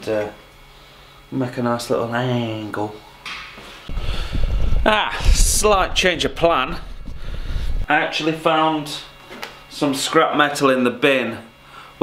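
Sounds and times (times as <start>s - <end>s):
camera handling rumble: 3.9s - 7.9s.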